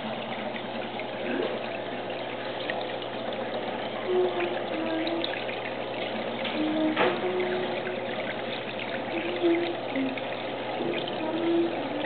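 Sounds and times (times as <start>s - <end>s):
water trickling in aquarium: 0.0s - 12.0s.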